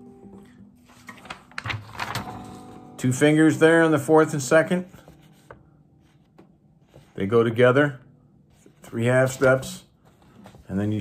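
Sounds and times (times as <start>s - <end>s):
paper rustling: 0.8s - 2.8s, 4.9s - 7.4s, 8.5s - 11.0s
acoustic guitar notes ringing: 2.2s - 4.9s.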